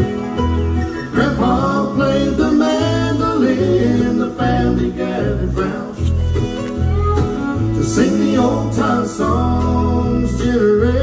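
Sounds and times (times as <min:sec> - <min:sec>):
bluegrass band playing: 0:00.0 - 0:11.0
person singing: 0:01.1 - 0:06.0, 0:07.7 - 0:11.0.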